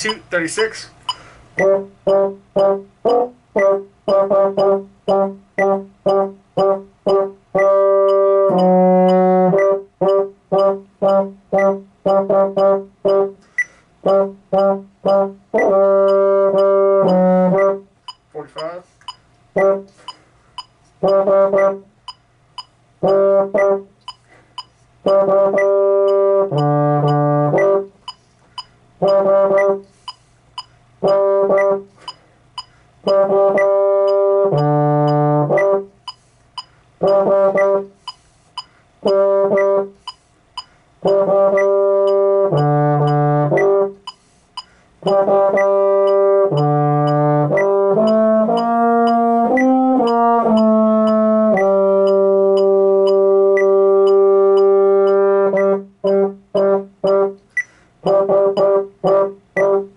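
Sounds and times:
baritone horn playing: 0:01.6 - 0:13.4, 0:14.0 - 0:17.9, 0:19.6 - 0:20.0, 0:21.0 - 0:21.9, 0:23.0 - 0:23.9, 0:25.0 - 0:27.9, 0:29.0 - 0:29.8, 0:31.0 - 0:31.9, 0:33.0 - 0:35.9, 0:37.0 - 0:37.9, 0:39.0 - 0:40.0, 0:41.0 - 0:44.0, 0:45.0 - 0:57.4, 0:58.0 - 0:59.9.

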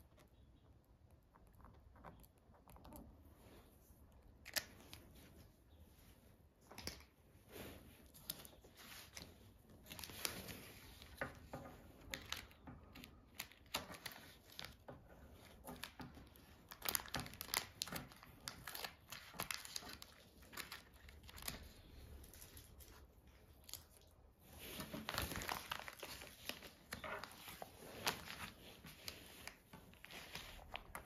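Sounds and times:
paper rustling: 0:07.7 - 0:31.0.

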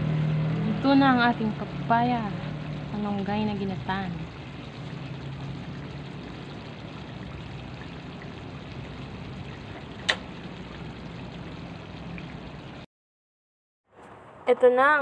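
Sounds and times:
low hum: 0:00.0 - 0:12.9
stew bubbling in a pan: 0:00.6 - 0:12.9.

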